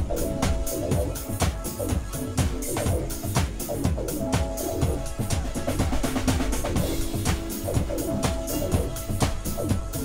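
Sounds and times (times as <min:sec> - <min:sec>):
drum kit steady beat: 0:00.0 - 0:10.0.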